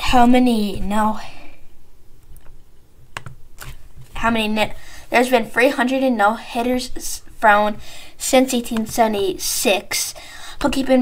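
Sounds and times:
keyboard keystrokes: 3.1 - 3.8.

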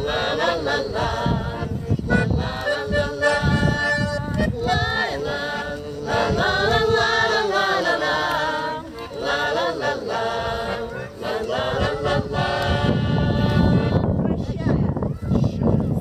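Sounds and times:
group singing in chorus: 0.0 - 14.2.

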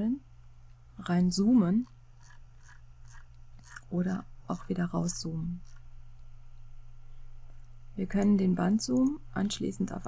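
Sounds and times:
mouse scroll wheel ticks: 1.8 - 3.9.

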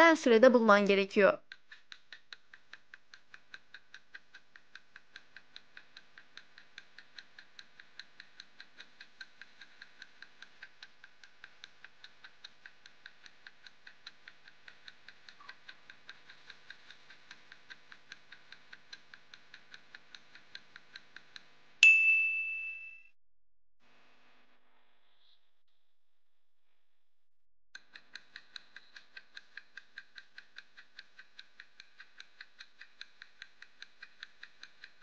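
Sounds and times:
faint clock ticking: 28.1 - 35.0.

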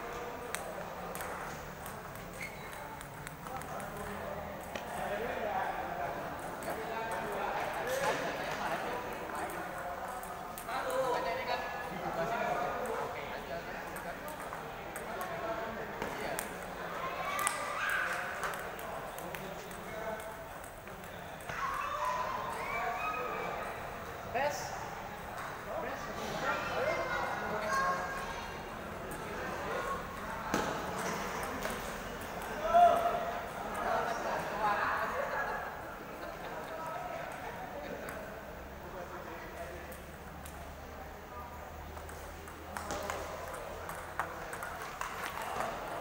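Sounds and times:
crowd chatter in a large hall: 0.0 - 46.0
table tennis balls clicking: 0.4 - 11.2, 11.8 - 22.7, 28.9 - 34.6, 39.4 - 40.8, 41.8 - 46.0.

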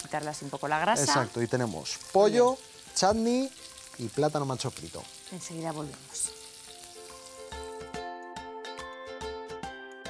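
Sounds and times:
slices sizzling in oil: 0.0 - 8.0
bright music: 0.0 - 10.0.

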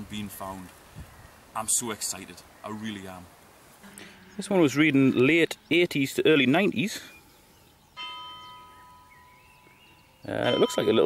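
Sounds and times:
ringing bell-like tone: 8.0 - 11.0.

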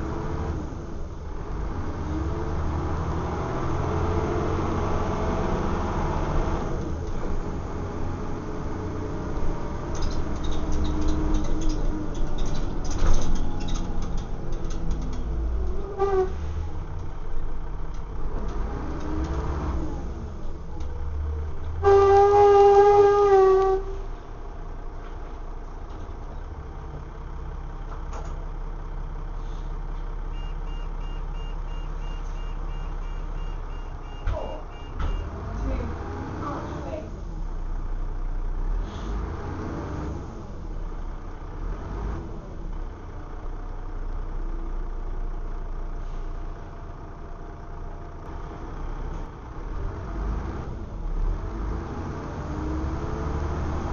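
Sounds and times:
bus engine rumbling: 0.0 - 53.9
vehicle horn: 15.9 - 16.4, 21.8 - 24.0
high beeps: 30.4 - 35.4.

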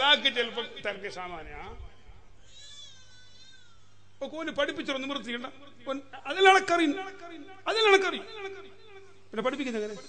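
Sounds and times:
high-pitched wavering cry: 1.9 - 4.2.

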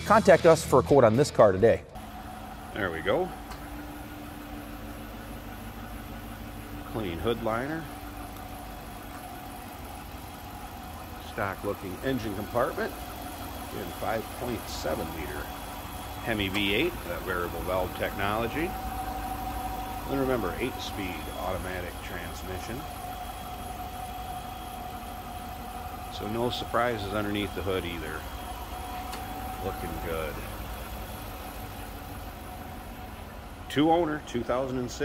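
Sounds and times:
car engine idling: 0.0 - 35.0
faint steady whine: 2.0 - 35.0.

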